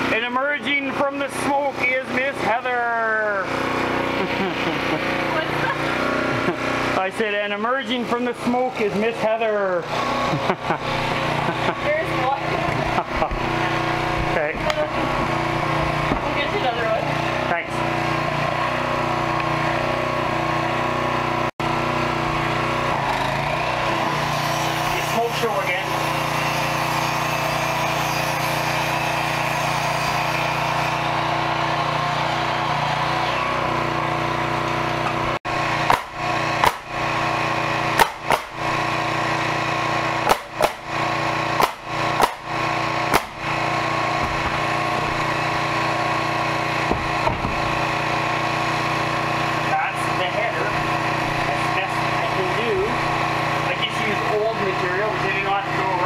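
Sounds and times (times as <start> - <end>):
small engine running steadily: 0.0 - 56.0.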